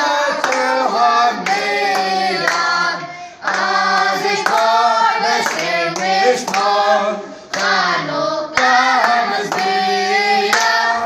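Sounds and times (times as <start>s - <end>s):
hands clapping to the beat: 0.0s - 2.8s, 3.4s - 11.0s
crowd singing together: 0.0s - 11.0s.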